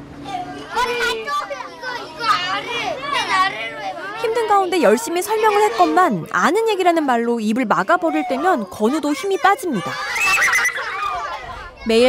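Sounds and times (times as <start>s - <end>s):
young children talking: 0.0s - 12.0s.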